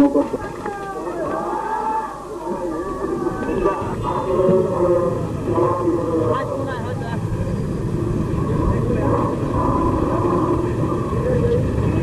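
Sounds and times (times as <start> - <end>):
faint voices talking: 0.0 - 12.0
low rumble: 2.6 - 12.0.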